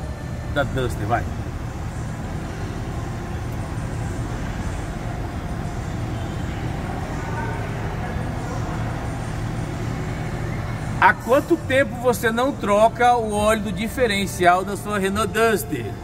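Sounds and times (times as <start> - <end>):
faint voices: 0.0 - 16.0
low mechanical hum: 0.0 - 16.0.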